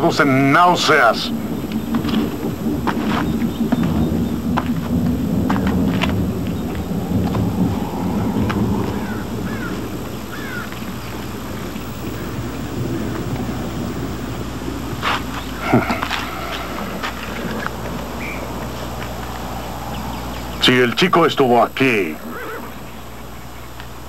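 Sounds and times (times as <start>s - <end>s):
low rumble: 3.8s - 11.0s, 11.8s - 14.9s, 16.3s - 20.7s
animal-like call: 6.6s - 10.7s.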